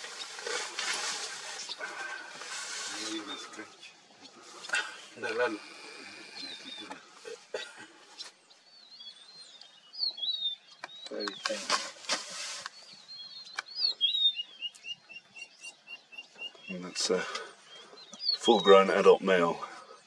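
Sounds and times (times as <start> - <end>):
birds warbling: 0.0 - 20.0
bird chirps: 1.5 - 20.0.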